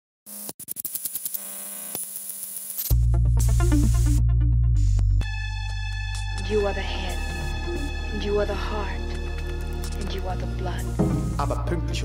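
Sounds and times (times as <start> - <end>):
glitchy electronic static: 0.3 - 3.0.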